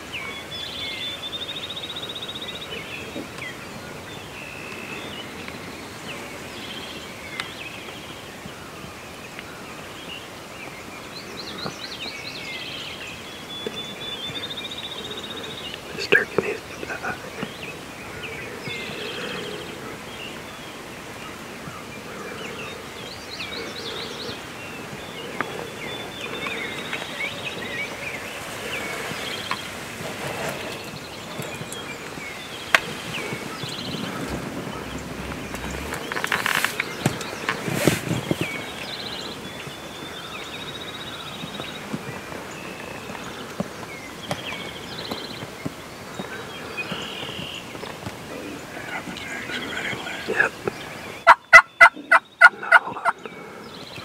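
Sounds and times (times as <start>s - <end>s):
faint outdoor background: 0.0s - 54.0s
songbirds chirping and trilling: 0.0s - 54.0s.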